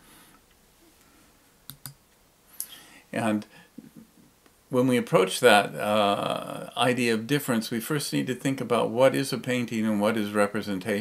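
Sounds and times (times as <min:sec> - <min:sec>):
sharp clicks: 0:01.7 - 0:02.0.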